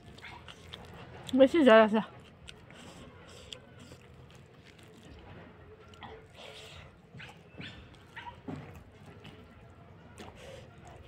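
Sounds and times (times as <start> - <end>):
chewing and mouth smacking: 0.0 - 11.0.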